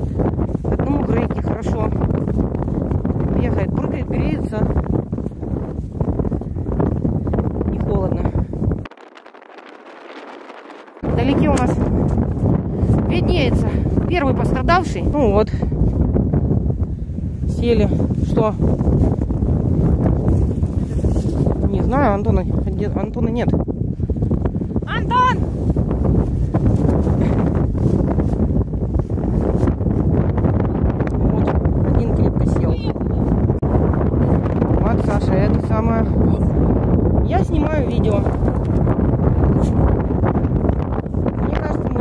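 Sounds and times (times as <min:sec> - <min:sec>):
wind on microphone: 0:00.0 - 0:42.0.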